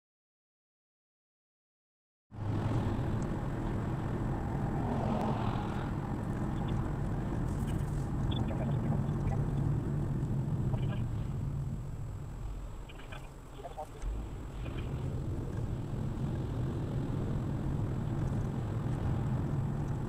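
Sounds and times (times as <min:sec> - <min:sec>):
car engine and tyre rumble: 0:02.3 - 0:20.0.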